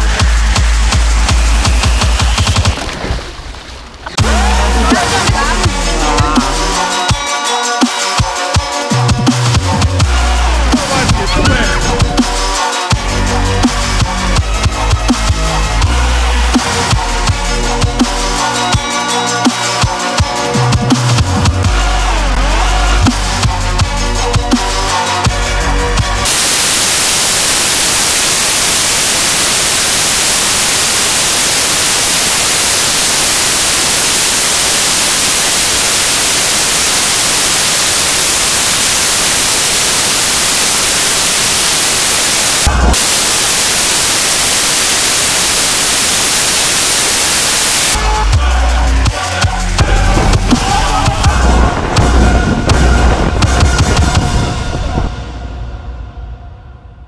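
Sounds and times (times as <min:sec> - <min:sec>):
electronic music with a beat: 0:00.0 - 0:02.8, 0:04.2 - 0:55.1
white noise static hiss: 0:26.2 - 0:48.0.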